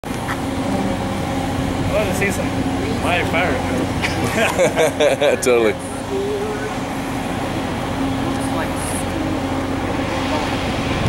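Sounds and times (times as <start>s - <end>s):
low mechanical hum: 0.0s - 11.0s
rushing background noise: 0.0s - 11.0s
faint voices: 5.3s - 10.8s.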